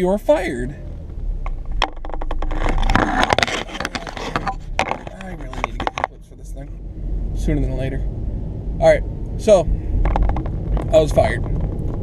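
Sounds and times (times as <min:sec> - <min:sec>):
car rumble: 0:00.0 - 0:12.0.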